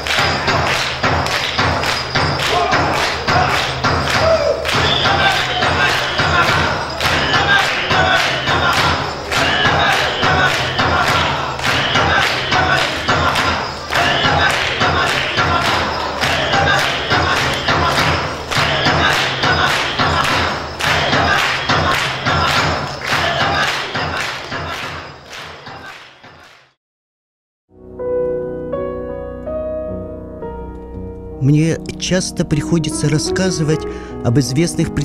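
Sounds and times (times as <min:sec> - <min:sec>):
fast steady drumbeat: 0:00.0 - 0:25.9
voices: 0:01.4 - 0:26.5.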